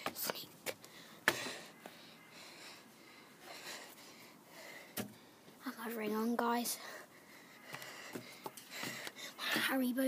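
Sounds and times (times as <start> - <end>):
faint breathing: 0.8 - 5.6, 6.6 - 9.6.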